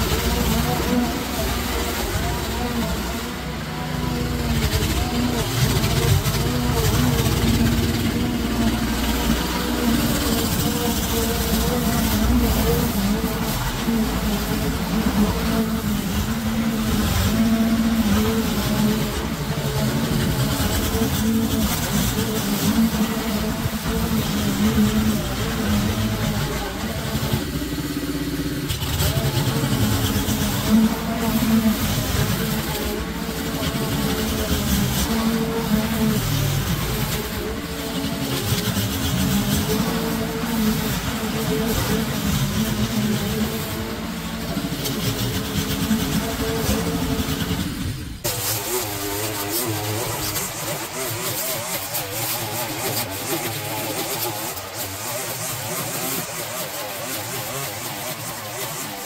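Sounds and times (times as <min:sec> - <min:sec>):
lawn mower engine cutting grass: 0:00.0 - 0:59.0.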